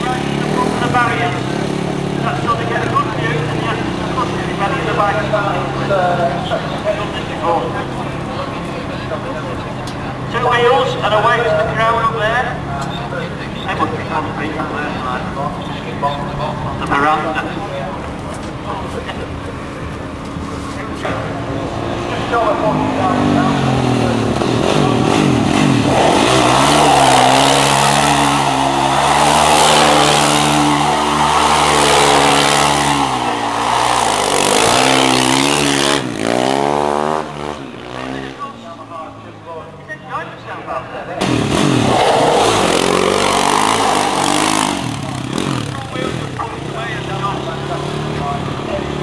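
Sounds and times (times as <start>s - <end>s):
quad bike engine revving: 0.0s - 39.1s, 41.2s - 49.0s.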